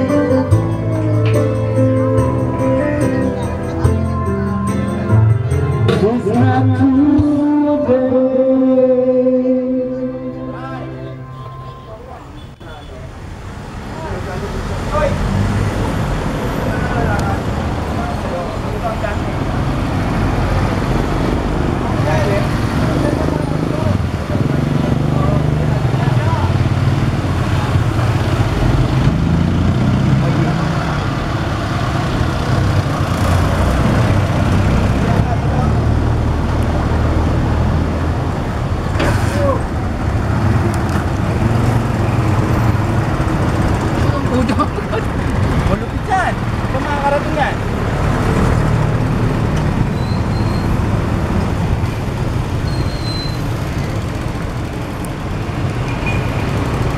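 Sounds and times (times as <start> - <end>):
background voices: 2.8 - 12.3.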